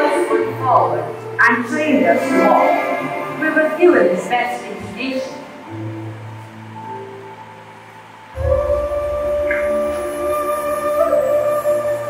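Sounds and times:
narration: 0:00.0 - 0:05.8
background music: 0:00.0 - 0:12.0.

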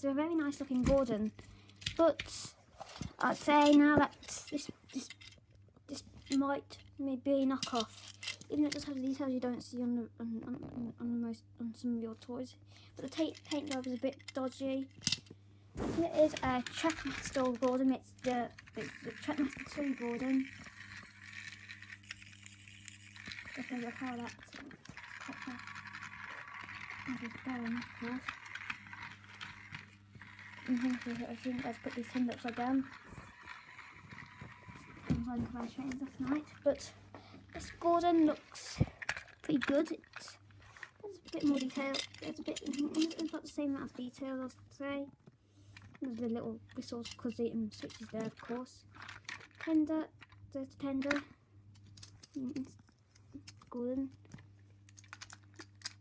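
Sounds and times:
plastic toy clicks and rattles: 0:00.5 - 0:06.5, 0:07.5 - 0:09.2, 0:13.0 - 0:15.3, 0:16.2 - 0:36.9, 0:37.5 - 0:44.2, 0:45.8 - 0:52.8, 0:53.4 - 0:56.0
plastic toy train clicks and taps: 0:51.0 - 0:51.2.

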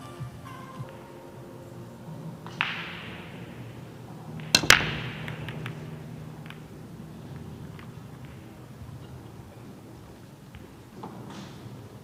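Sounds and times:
cue tip striking cue ball: 0:00.8 - 0:11.9
cue ball smacking the rack: 0:02.3 - 0:12.0
billiard balls clicking together: 0:02.4 - 0:12.0.

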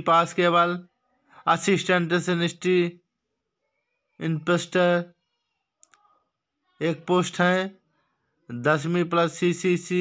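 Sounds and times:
man talking: 0:00.0 - 0:03.0, 0:04.2 - 0:05.2, 0:06.8 - 0:07.8, 0:08.5 - 0:10.0.

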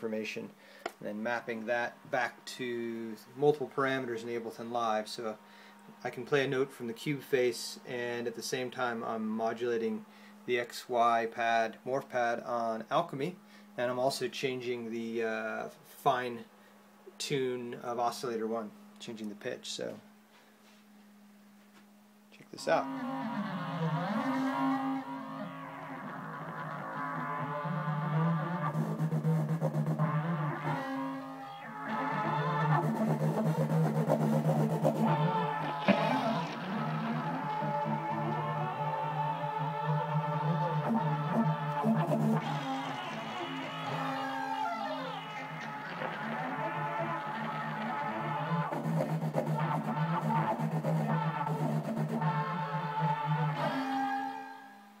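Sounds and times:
sustained synthesizer note: 0:22.8 - 0:55.0.

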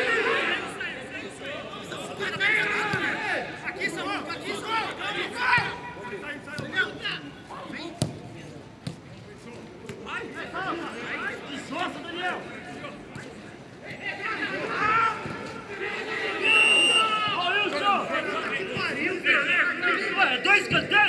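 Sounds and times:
football players shouting: 0:00.0 - 0:07.4, 0:13.9 - 0:21.0.

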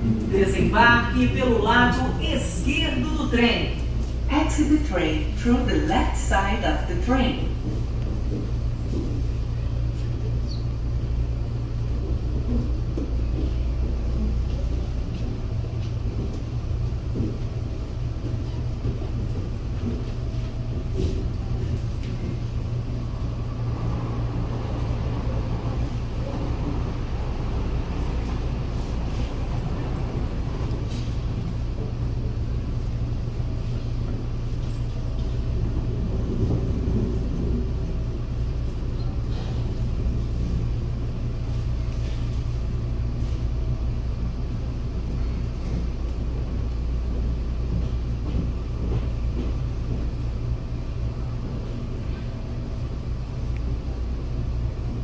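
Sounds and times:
electric train rumble: 0:00.0 - 0:55.0.

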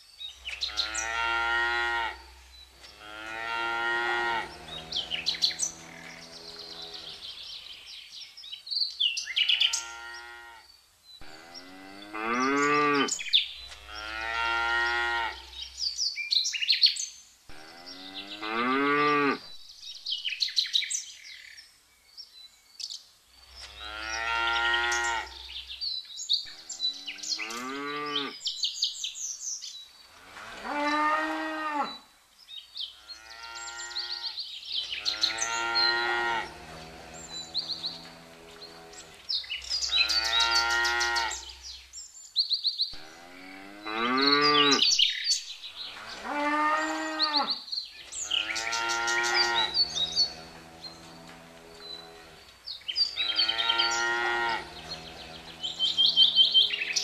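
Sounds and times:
cows mooing: 0:00.6 - 0:07.3, 0:09.7 - 0:10.6, 0:11.2 - 0:13.2, 0:13.8 - 0:15.6, 0:17.5 - 0:19.4, 0:23.7 - 0:25.5, 0:26.6 - 0:28.4, 0:30.4 - 0:32.0, 0:35.0 - 0:39.2, 0:39.8 - 0:41.6, 0:43.0 - 0:44.8, 0:46.0 - 0:47.6, 0:48.2 - 0:52.5, 0:53.2 - 0:57.0.

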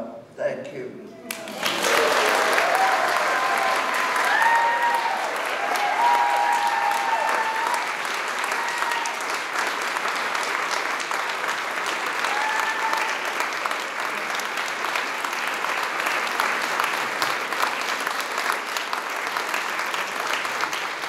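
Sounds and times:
large crowd applauding: 0:01.3 - 0:21.0.

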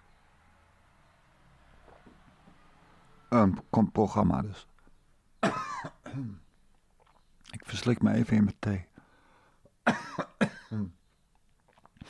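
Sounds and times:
man coughing: 0:05.4 - 0:06.4, 0:09.8 - 0:10.9.

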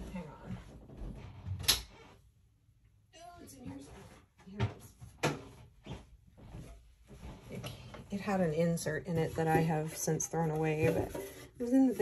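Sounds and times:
objects knocking and clattering: 0:08.9 - 0:11.9.

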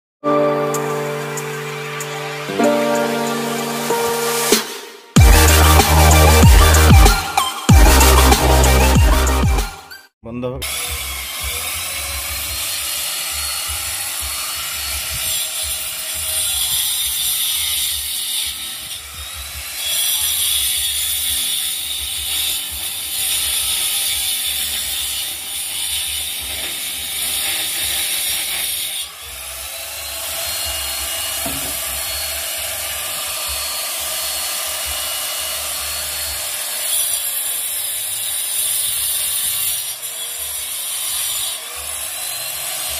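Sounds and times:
angle grinder cutting brick: 0:04.7 - 0:09.4, 0:10.6 - 0:42.9.

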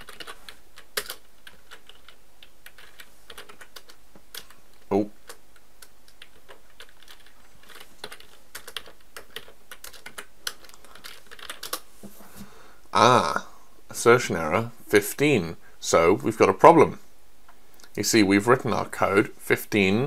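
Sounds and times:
computer keyboard typing: 0:00.0 - 0:11.9.

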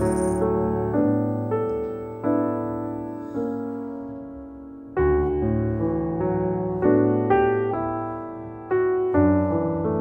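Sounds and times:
slow piano-like keyboard chords: 0:00.0 - 0:10.0.

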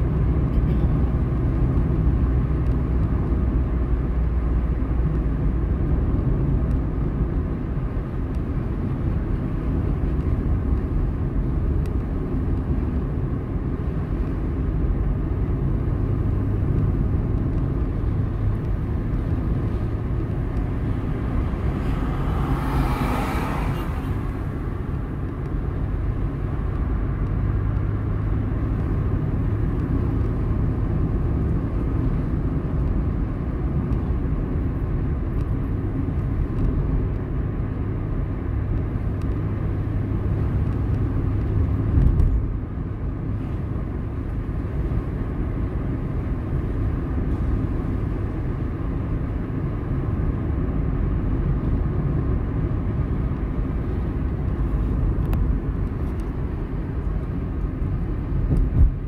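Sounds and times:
car engine: 0:00.0 - 0:59.0.

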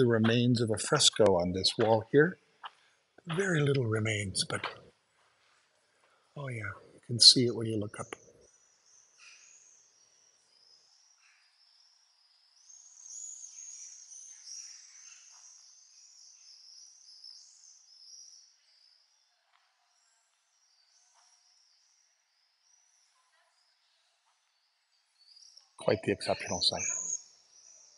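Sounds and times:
songbird warbling: 0:25.9 - 0:27.2.

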